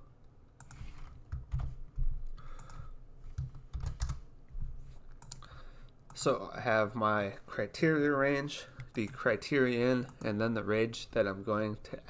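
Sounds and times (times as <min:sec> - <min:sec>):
keyboard typing: 0:00.6 - 0:01.8, 0:02.4 - 0:04.2, 0:05.2 - 0:05.5.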